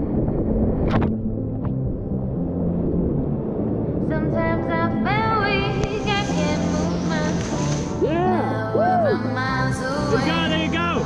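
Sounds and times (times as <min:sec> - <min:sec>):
wind buffeting microphone: 0:00.0 - 0:06.6.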